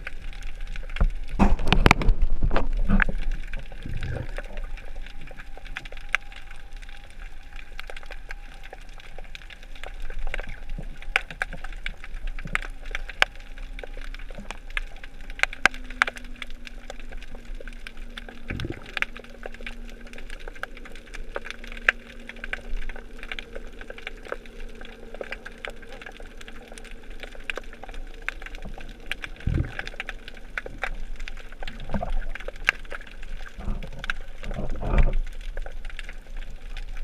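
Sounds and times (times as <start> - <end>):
snapping shrimp clicks underwater: 0.8 - 6.4, 9.8 - 37.0.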